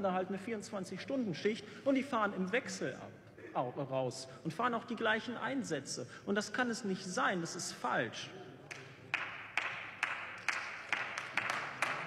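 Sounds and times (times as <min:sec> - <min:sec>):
scattered clapping: 0:08.7 - 0:12.0.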